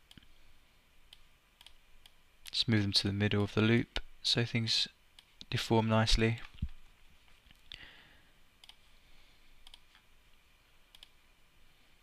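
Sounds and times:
computer mouse clicks: 1.1 - 2.2, 8.6 - 8.8, 9.6 - 10.0, 10.9 - 11.2.

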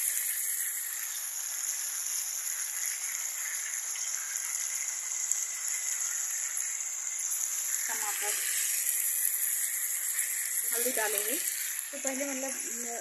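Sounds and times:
vegetables sizzling in oil: 0.0 - 13.0.

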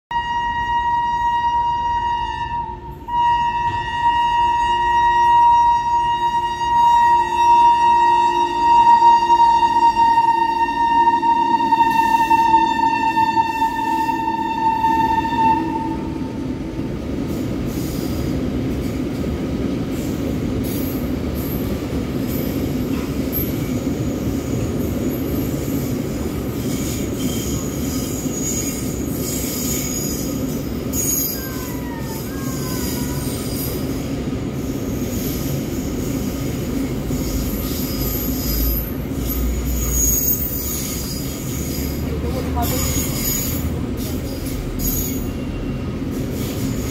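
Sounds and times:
locomotive horn: 0.1 - 16.5
train wheels rumbling on rail: 0.1 - 46.9
high wheel squeal: 23.3 - 34.0, 34.6 - 46.9.

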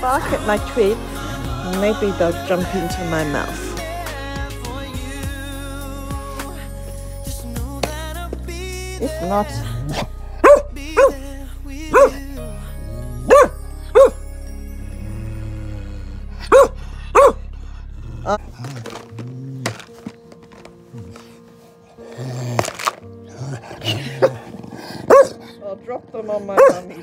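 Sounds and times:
dog barking: 10.4 - 11.2, 11.9 - 12.2, 13.2 - 14.2, 16.5 - 17.4, 25.1 - 25.5, 26.6 - 27.0.

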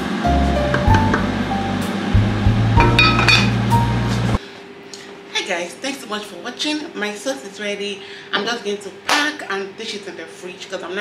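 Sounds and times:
background music with bass: 0.0 - 4.4
pot lid clinking: 2.8 - 3.6.

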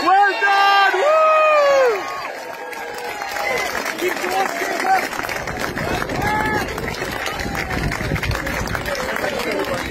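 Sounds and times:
drawn-out shout: 0.0 - 8.0
crowd shouting and cheering: 0.0 - 9.9.

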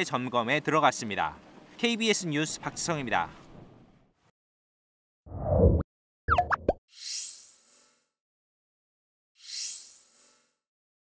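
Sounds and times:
popping blips sliding in pitch: 6.3 - 6.8.

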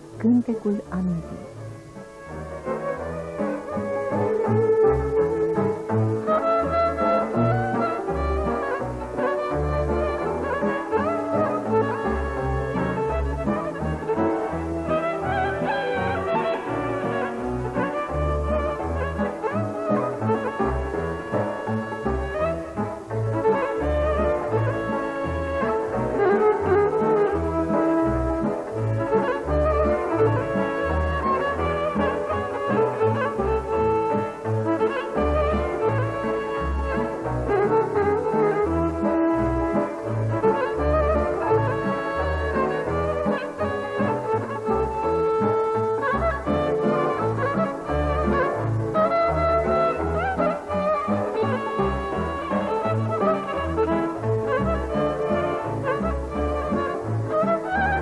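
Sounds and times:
double bass low notes: 0.0 - 58.0
folk band music: 0.0 - 58.0
violins playing melody: 0.0 - 58.0.

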